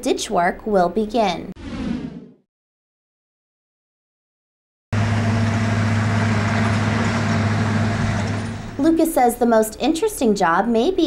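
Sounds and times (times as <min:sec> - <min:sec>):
vehicle engine running: 0:05.0 - 0:08.8.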